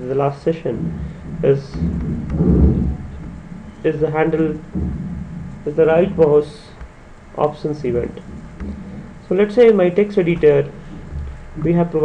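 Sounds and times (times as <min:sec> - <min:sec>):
low rumble on microphone: 0:00.0 - 0:12.0
person speaking: 0:00.0 - 0:12.0.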